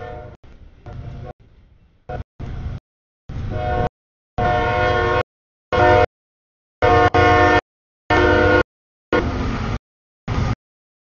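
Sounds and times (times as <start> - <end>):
locomotive horn: 0.0 - 1.3, 3.3 - 6.1, 6.8 - 9.5
train low rumble: 0.0 - 6.1, 6.8 - 10.6.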